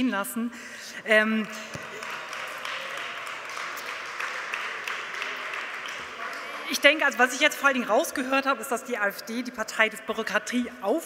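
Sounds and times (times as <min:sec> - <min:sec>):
crowd applauding: 0:01.5 - 0:07.1.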